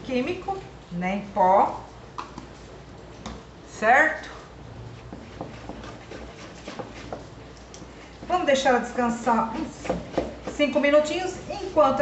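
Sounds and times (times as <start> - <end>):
whisk stirring batter in bowl: 4.3 - 12.0.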